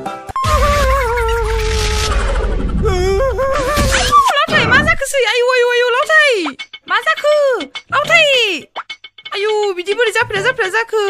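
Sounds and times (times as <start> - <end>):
woman wailing: 0.4 - 1.9, 2.8 - 4.7.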